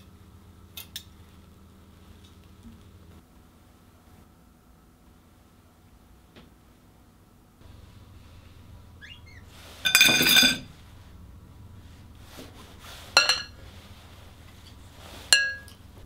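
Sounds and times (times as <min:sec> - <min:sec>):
cutlery clinking against dishes: 0:09.8 - 0:10.7, 0:13.2 - 0:13.6, 0:15.4 - 0:15.8.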